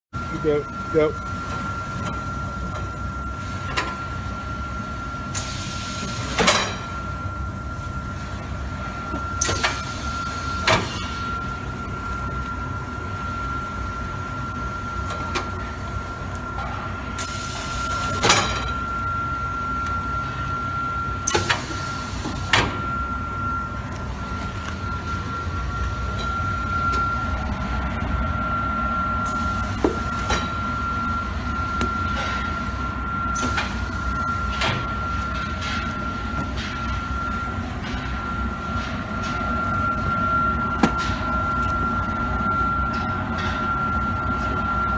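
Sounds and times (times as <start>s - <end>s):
machine hum with high whine: 0.1s - 44.9s.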